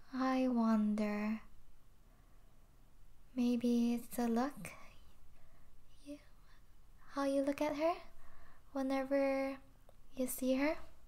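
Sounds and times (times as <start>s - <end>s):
person speaking: 8.7s - 11.0s.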